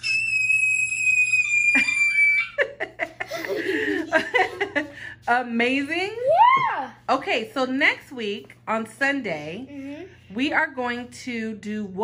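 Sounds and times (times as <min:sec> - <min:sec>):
child squealing: 0:00.0 - 0:02.6, 0:06.2 - 0:07.0.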